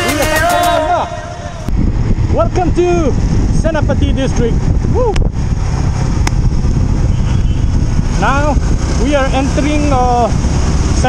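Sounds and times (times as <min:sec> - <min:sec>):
wind rumble on microphone: 0:01.0 - 0:11.0
motorcycle engine cruising: 0:01.2 - 0:11.0.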